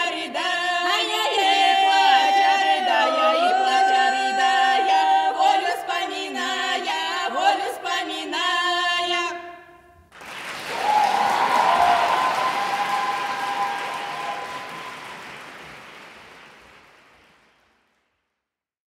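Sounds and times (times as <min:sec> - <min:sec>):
women singing a cappella: 0:00.0 - 0:09.8
audience applause: 0:10.1 - 0:18.0.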